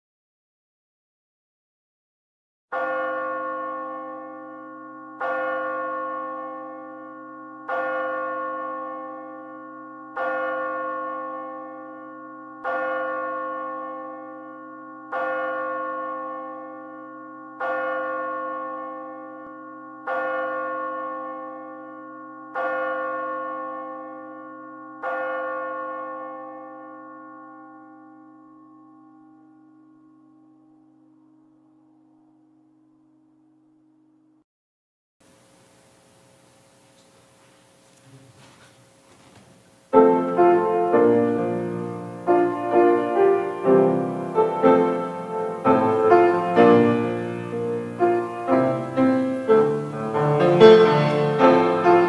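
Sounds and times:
church bell tolling: 0:02.7 - 0:33.8, 0:40.0 - 0:52.0.

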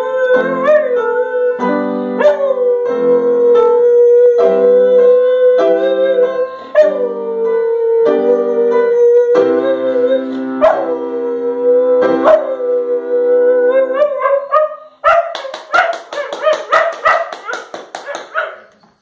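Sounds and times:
piano chords: 0:00.0 - 0:18.7
dog yipping: 0:14.2 - 0:18.8.

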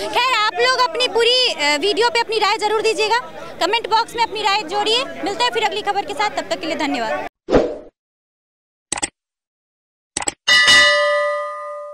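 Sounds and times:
short clicks: 0:08.9 - 0:09.1, 0:10.2 - 0:10.4
bright bell ding: 0:10.5 - 0:11.9.

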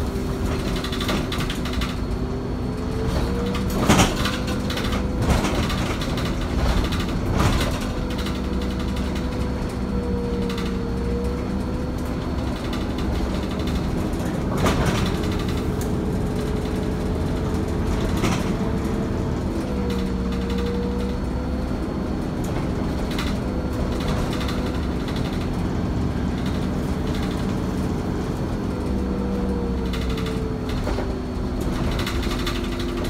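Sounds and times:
bus engine rumble and whine: 0:00.0 - 0:33.0
knocks and rattles: 0:03.0 - 0:21.2.

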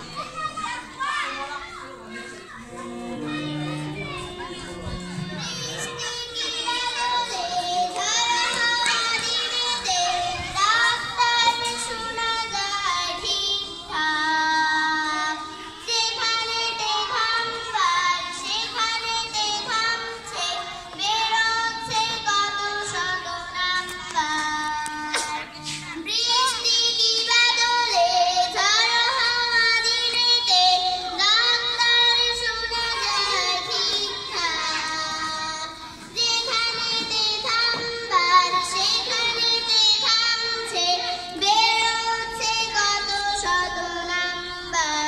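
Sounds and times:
children singing: 0:00.0 - 0:45.0.

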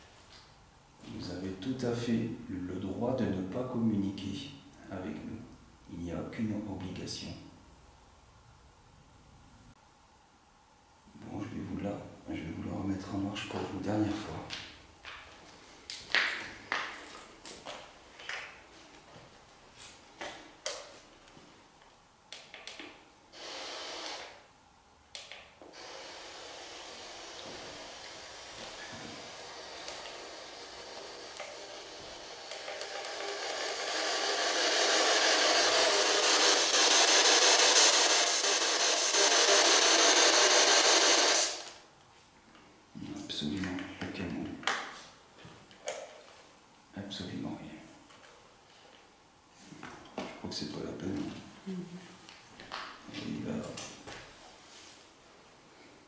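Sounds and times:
radio static crackles and hiss: 0:25.7 - 0:41.8.

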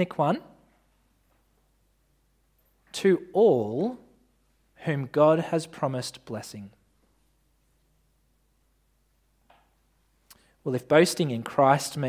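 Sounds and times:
man speaking: 0:00.0 - 0:00.6, 0:02.9 - 0:06.8, 0:10.3 - 0:12.0.

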